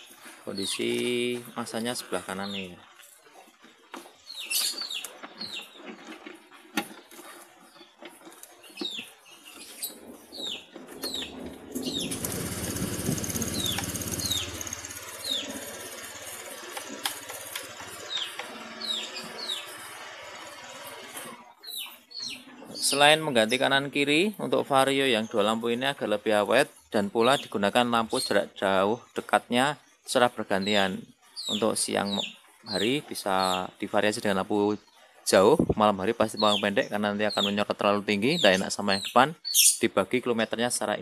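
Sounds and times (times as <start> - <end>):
small birds chirping: 0.0 - 41.0.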